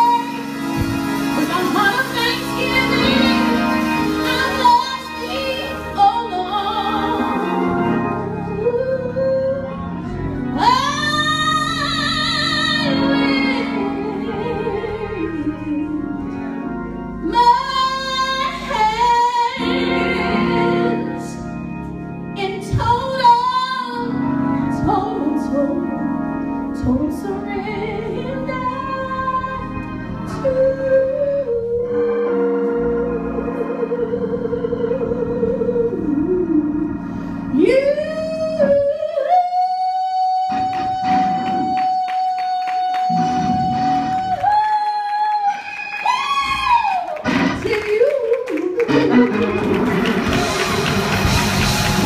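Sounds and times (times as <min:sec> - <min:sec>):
woman singing into a microphone: 0:00.0 - 0:00.6, 0:01.3 - 0:16.3, 0:17.2 - 0:21.4, 0:22.4 - 0:26.2, 0:26.8 - 0:47.0
held accompaniment: 0:00.0 - 0:39.2, 0:47.1 - 0:52.0.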